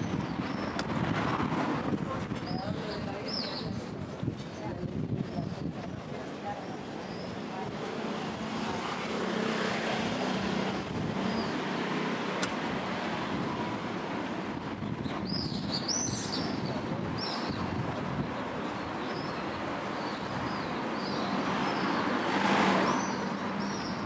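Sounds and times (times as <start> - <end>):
vehicle passing: 21.0 - 23.8.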